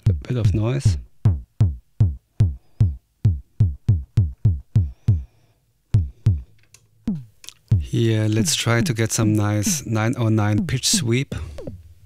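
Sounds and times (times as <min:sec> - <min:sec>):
synthesized kick drum hits: 0:00.9 - 0:05.2, 0:06.0 - 0:06.4, 0:07.1 - 0:09.0, 0:10.6 - 0:11.8.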